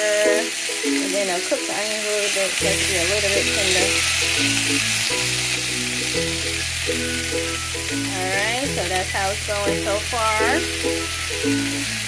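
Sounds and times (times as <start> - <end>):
vegetables sizzling in a pan: 0.0 - 12.0
background music with chords: 2.7 - 12.0.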